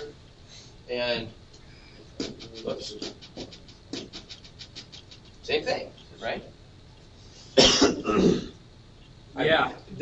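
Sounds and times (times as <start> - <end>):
person coughing: 7.6 - 8.6.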